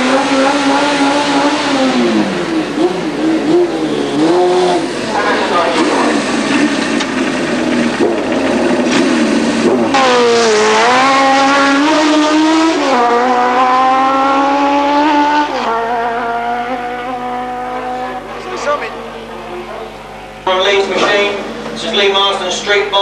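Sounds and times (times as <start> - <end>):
motorcycle engine accelerating: 0.0 - 22.5.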